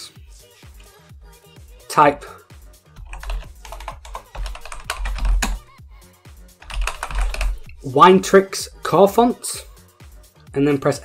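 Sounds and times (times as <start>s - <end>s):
background music with low bass: 0.0s - 11.0s
keyboard keystroke clicks: 6.6s - 7.8s.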